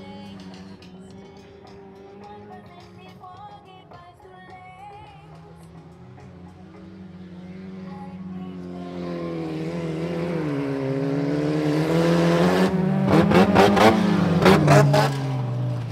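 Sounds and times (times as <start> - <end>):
car engines accelerating: 0.0 - 4.2, 4.8 - 15.9.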